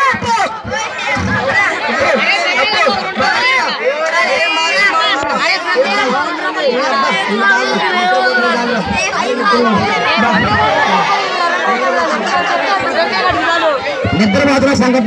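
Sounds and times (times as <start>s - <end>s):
young voices crowd chatter: 0.0s - 15.0s.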